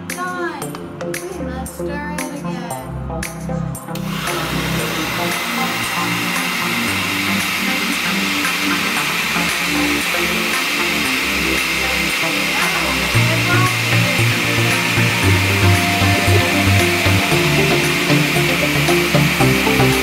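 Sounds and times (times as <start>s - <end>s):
background music with bass line: 0.0s - 20.0s
blender motor running: 4.0s - 20.0s.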